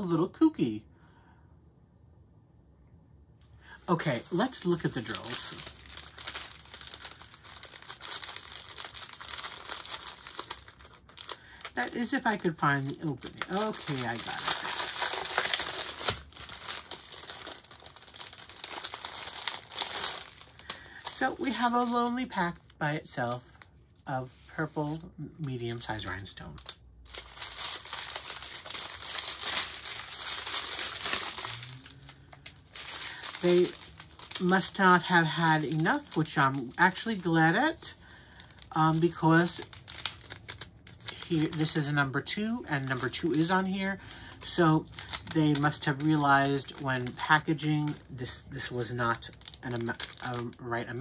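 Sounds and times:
plastic bag crinkling: 3.7 - 51.0.

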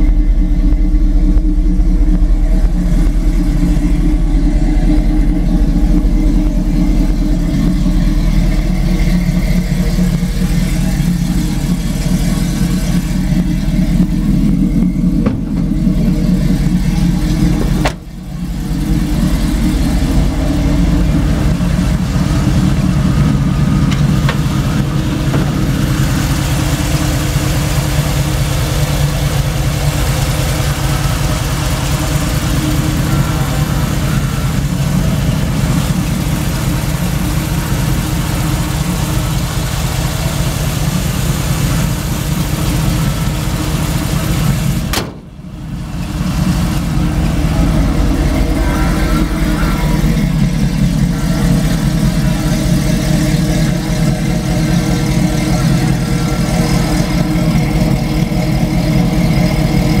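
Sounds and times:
engine idling: 0.0 - 60.0.

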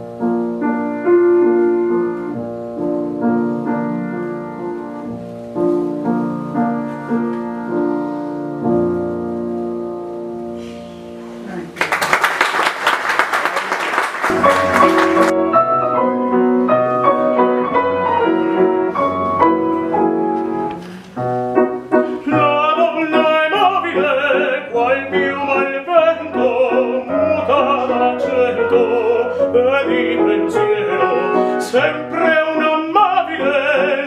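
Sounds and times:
grand piano playing: 0.0 - 11.8, 14.0 - 34.0
male opera singer: 22.1 - 34.0.

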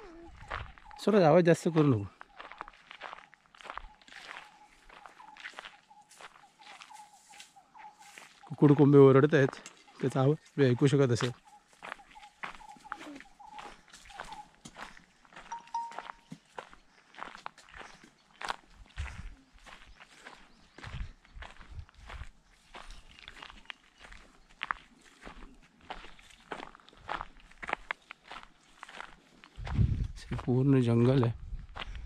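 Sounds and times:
footsteps on dry dirt and leaves: 0.0 - 32.0.

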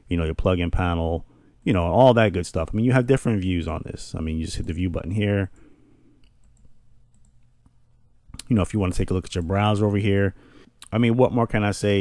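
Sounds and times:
low room hum: 0.0 - 12.0
computer mouse clicks: 5.5 - 7.8.

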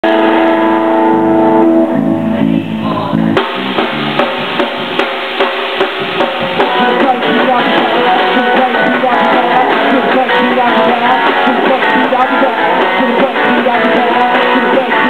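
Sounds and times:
drum kit beat: 0.0 - 15.0
live rock band playing: 0.0 - 15.0.

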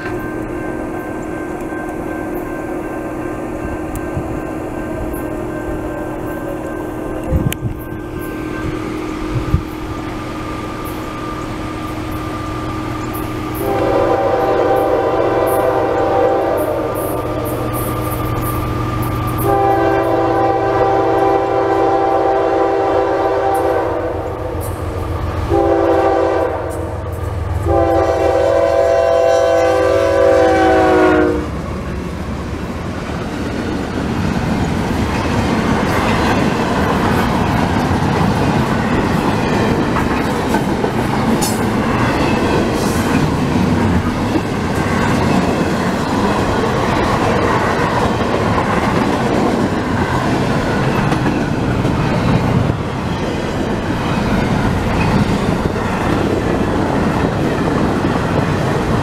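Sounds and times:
train cars rumbling and clacking: 0.0 - 59.0
locomotive air horn: 11.4 - 17.9, 19.3 - 24.8, 25.4 - 31.6.

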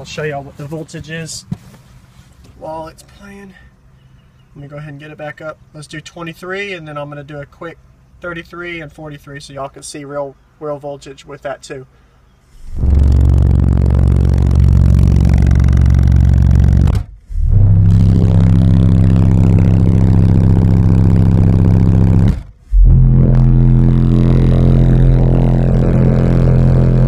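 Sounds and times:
loud bass test tones: 12.5 - 27.0.

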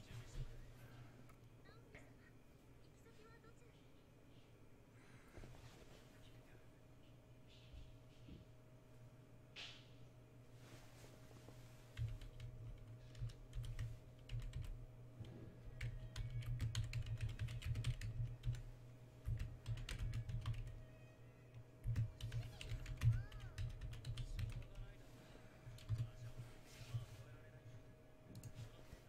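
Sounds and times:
faint steady hum: 0.0 - 29.0
typing on computer keyboard: 12.0 - 14.8, 15.8 - 20.8, 21.8 - 24.8, 25.8 - 26.1.

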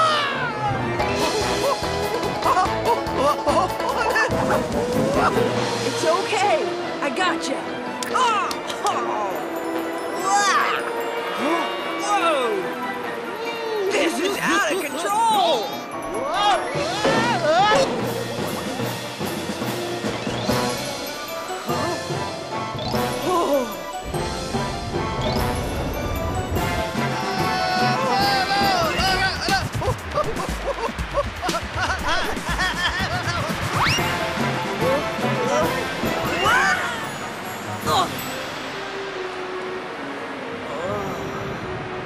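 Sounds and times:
animated film soundtrack music: 0.0 - 42.0
cartoon music with drum hits: 16.4 - 37.0.

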